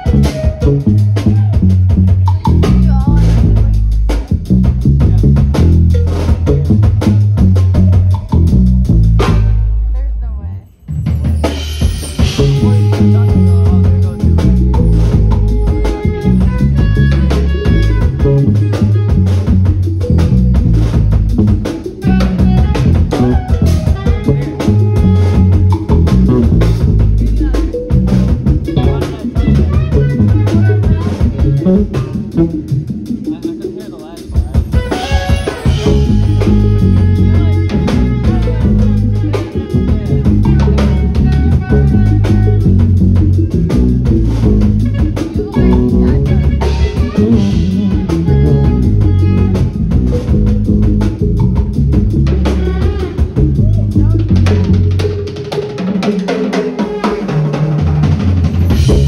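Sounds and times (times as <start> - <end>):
jazz band playing: 0.0 - 59.0.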